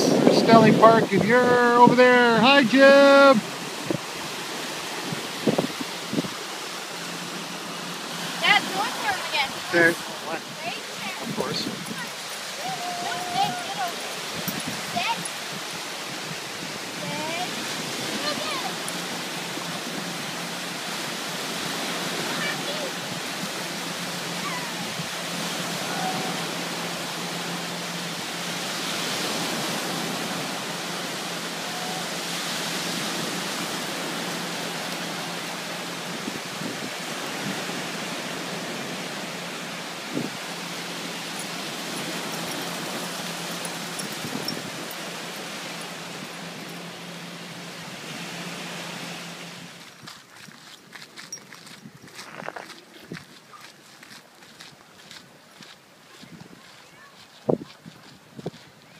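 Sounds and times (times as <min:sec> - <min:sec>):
small waves washing up a beach: 0:00.0 - 0:58.9.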